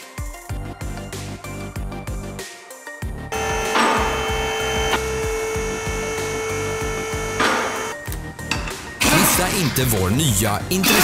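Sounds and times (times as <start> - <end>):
background music: 0.0 - 11.0
impact wrench whining: 3.3 - 8.0.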